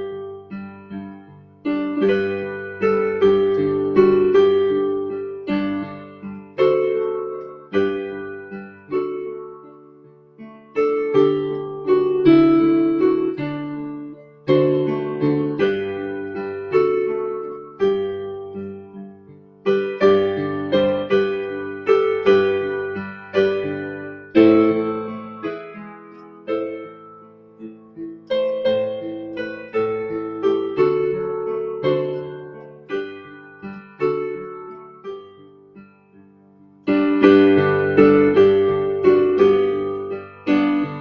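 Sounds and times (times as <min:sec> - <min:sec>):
piano melody over broken chords: 0:00.0 - 0:41.0.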